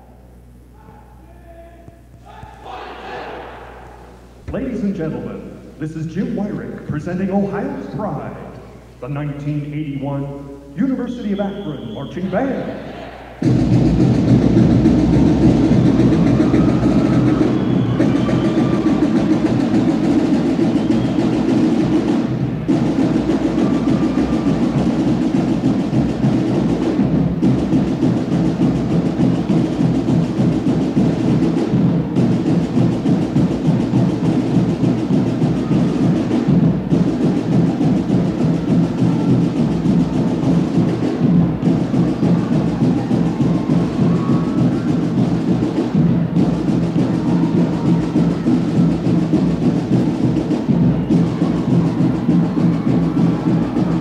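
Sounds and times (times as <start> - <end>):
marching drumline playing: 2.3 - 54.0.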